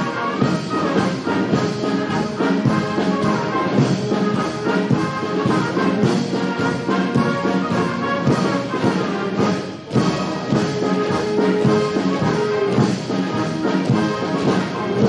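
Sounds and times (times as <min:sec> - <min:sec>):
brass band playing: 0:00.0 - 0:15.0
troops marching in step: 0:00.0 - 0:15.0.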